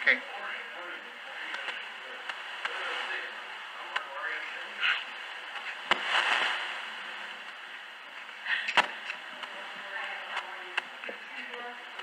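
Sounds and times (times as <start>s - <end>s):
faint indistinct voices: 8.3s - 12.0s.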